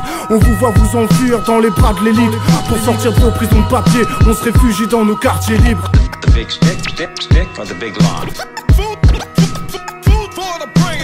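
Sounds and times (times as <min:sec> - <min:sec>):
hip-hop beat: 0:00.0 - 0:11.0
kick drum: 0:05.6 - 0:06.4.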